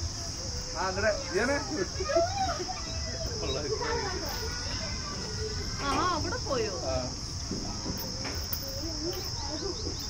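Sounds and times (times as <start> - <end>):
high-pitched insect chorus: 0.0 - 10.0
voices talking: 0.0 - 10.0.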